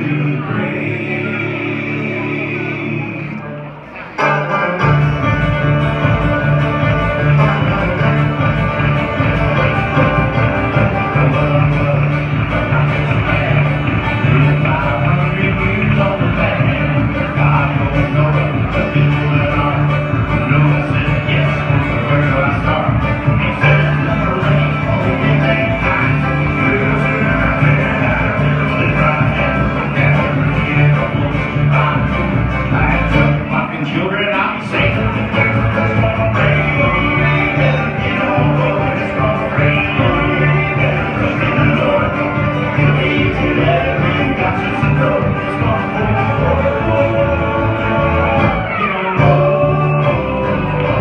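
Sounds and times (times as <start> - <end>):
strummed acoustic guitar: 0.0 - 51.0
upright bass plucking: 0.0 - 51.0.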